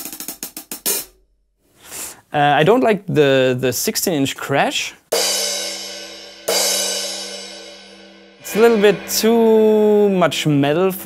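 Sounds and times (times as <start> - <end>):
crash cymbal ringing: 5.1 - 11.0.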